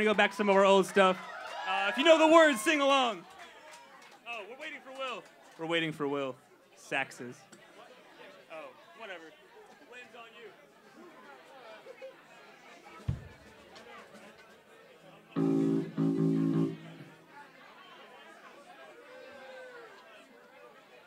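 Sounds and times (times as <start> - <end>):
audience chatter: 1.8 - 21.0
instrument playing held low notes: 15.4 - 17.0.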